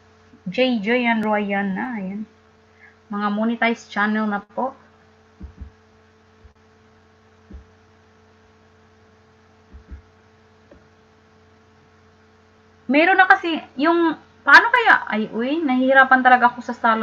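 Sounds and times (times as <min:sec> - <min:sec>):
electrical hum: 0:00.0 - 0:17.0
soft low thumps: 0:05.4 - 0:06.7, 0:07.4 - 0:08.0, 0:09.6 - 0:11.0.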